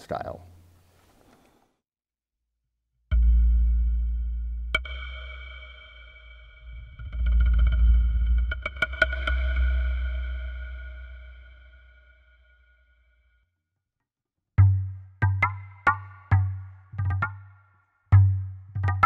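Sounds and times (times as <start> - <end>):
deep low hum: 3.1 - 12.6.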